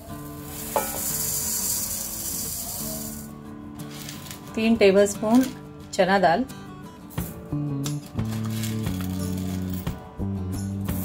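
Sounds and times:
rice grains pouring: 0.0s - 3.3s
soft background music: 0.0s - 11.0s.

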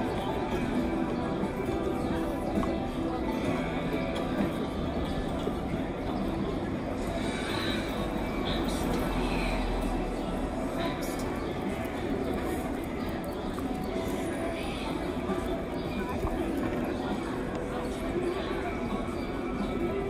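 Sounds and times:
background chatter: 0.0s - 20.0s
music: 0.0s - 20.0s.

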